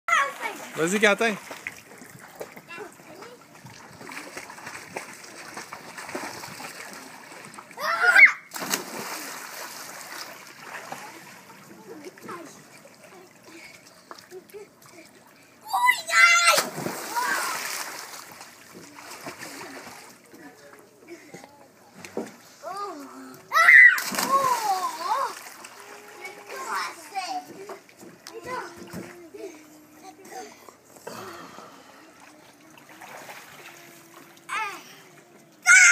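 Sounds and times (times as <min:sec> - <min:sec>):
child shouting: 0:00.1 - 0:00.6, 0:07.8 - 0:08.5, 0:15.6 - 0:17.6, 0:23.5 - 0:25.4, 0:35.6 - 0:35.9
children's voices: 0:00.1 - 0:00.8, 0:22.6 - 0:33.0, 0:33.6 - 0:35.9
pool water splashing: 0:00.1 - 0:35.9.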